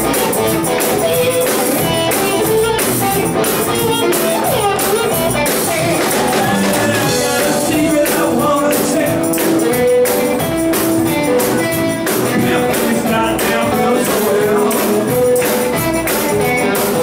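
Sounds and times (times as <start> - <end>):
blues-rock band playing: 0.0 - 17.0
steady drum beat: 0.0 - 17.0
man singing: 6.0 - 9.8, 12.2 - 17.0.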